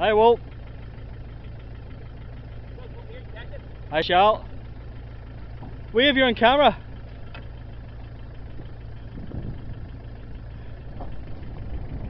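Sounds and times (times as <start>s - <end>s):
vehicle engine idling: 0.0s - 12.0s.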